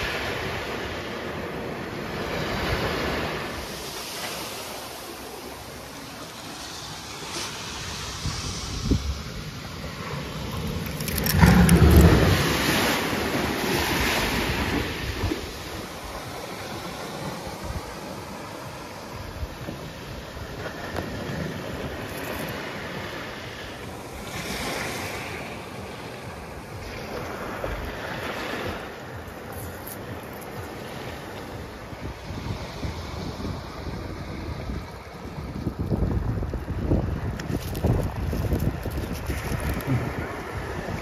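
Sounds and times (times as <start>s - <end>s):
surf on pebble beach: 0.0s - 41.0s
wind on microphone: 5.9s - 41.0s.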